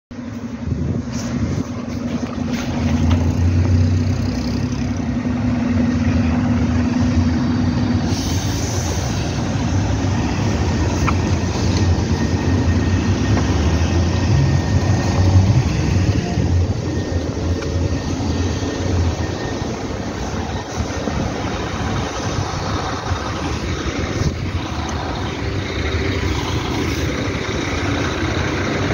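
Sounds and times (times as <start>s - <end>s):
bus engine idling: 0.1s - 28.9s
higher drone: 0.2s - 28.9s
hiss: 8.0s - 9.8s.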